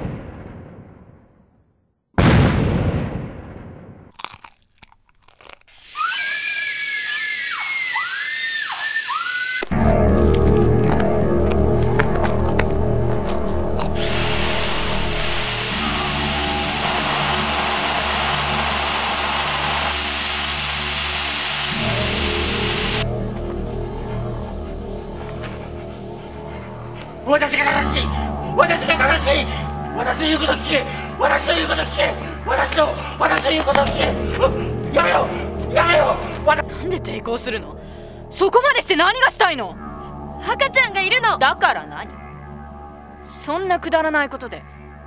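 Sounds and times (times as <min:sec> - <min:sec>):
deep booms: 0:00.0 - 0:01.4, 0:02.2 - 0:04.1.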